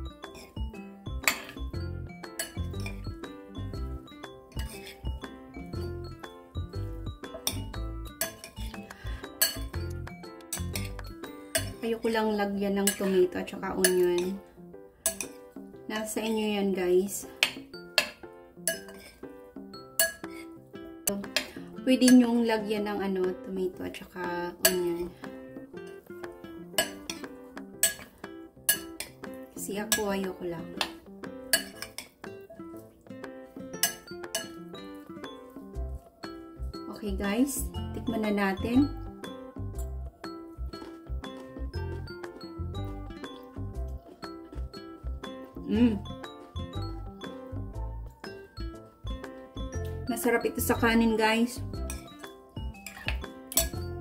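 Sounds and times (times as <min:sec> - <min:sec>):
background music with steady beat: 0:00.0 - 0:54.0
metal fork clinking on ceramic bowl: 0:01.2 - 0:01.6, 0:02.4 - 0:03.0, 0:04.5 - 0:05.0, 0:07.3 - 0:08.8, 0:09.4 - 0:11.8, 0:12.8 - 0:13.2, 0:13.8 - 0:14.4, 0:15.1 - 0:15.4, 0:17.4 - 0:19.2, 0:20.0 - 0:20.5, 0:26.8 - 0:28.1, 0:28.7 - 0:29.2, 0:31.5 - 0:32.2, 0:33.8 - 0:34.7, 0:51.8 - 0:53.9.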